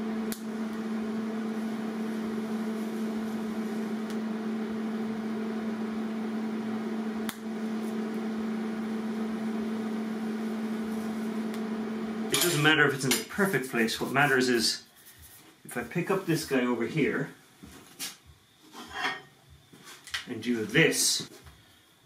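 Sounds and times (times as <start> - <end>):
welding arc buzzing: 0.0 - 13.2.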